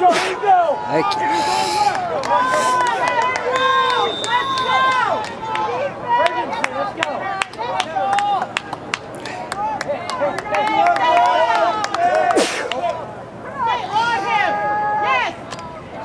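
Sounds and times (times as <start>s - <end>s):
players shouting and calling: 0.0s - 16.0s.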